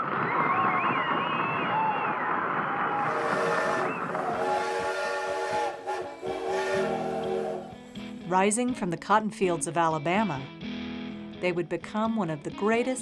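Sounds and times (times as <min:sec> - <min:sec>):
steam locomotive whistle: 0:03.0 - 0:08.0.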